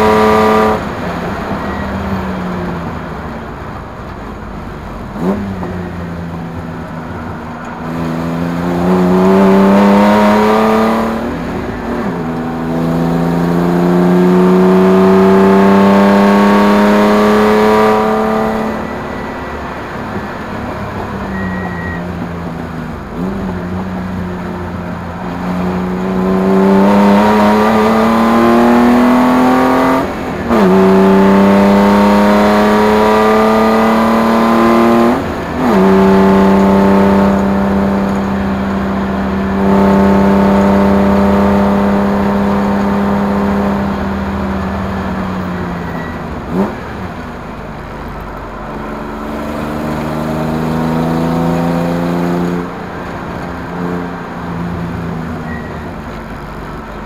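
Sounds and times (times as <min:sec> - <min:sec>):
race car engine accelerating: 0:00.0 - 0:03.0, 0:05.0 - 0:57.0
gear changes: 0:00.0 - 0:57.0.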